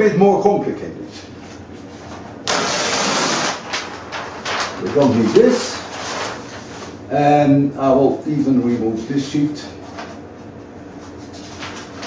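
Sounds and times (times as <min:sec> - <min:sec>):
paper rustle: 0:02.0 - 0:07.0, 0:09.8 - 0:10.2, 0:11.0 - 0:12.0.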